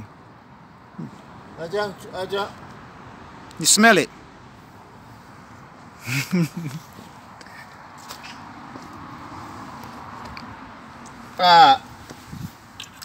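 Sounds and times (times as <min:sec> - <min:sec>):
outdoor background noise: 0:00.0 - 0:13.0.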